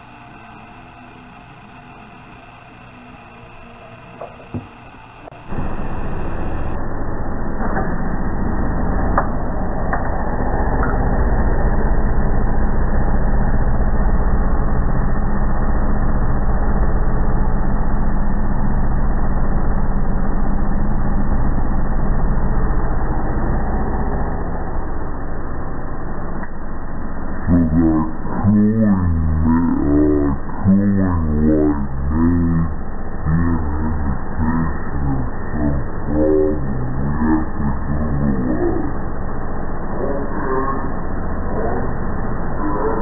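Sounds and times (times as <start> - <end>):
clothes dryer humming: 0.0 - 43.0.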